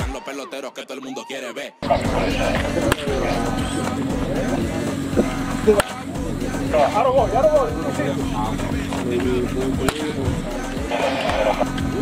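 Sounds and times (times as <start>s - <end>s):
background music: 0.0s - 12.0s
voices: 0.0s - 12.0s
bat striking baseball: 2.5s - 3.2s, 9.8s - 10.1s.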